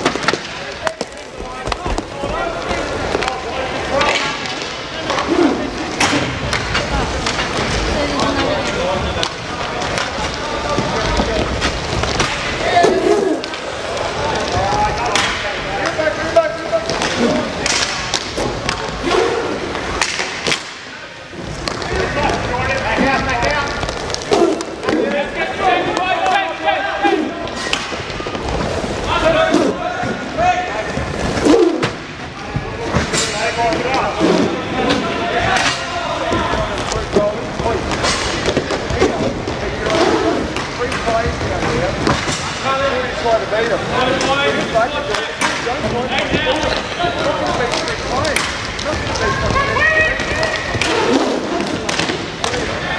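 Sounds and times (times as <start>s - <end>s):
hockey sticks and puck clacking: 0.0s - 52.9s.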